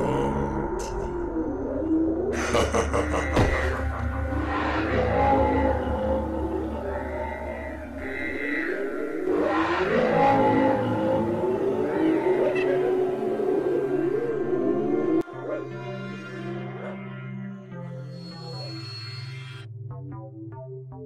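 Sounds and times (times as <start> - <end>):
dark background music: 0.0 - 21.0.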